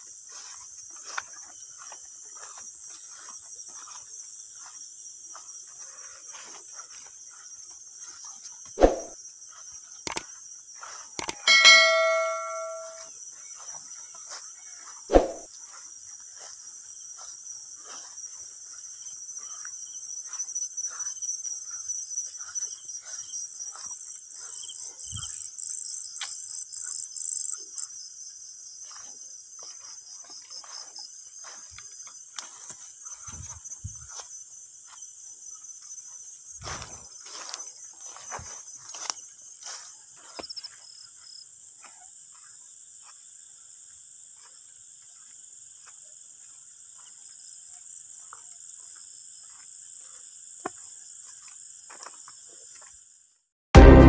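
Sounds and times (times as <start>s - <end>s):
crickets trilling: 0.0s - 53.3s
metallic clang: 11.2s - 13.0s, 53.8s - 54.0s
sharp knocks: 11.2s - 13.0s.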